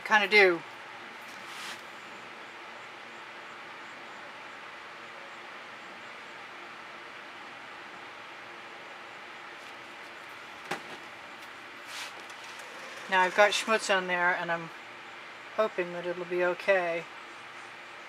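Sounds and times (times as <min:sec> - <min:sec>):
background hum and hiss: 0:00.0 - 0:18.0
soft brief rustle: 0:01.3 - 0:01.8, 0:11.9 - 0:12.3.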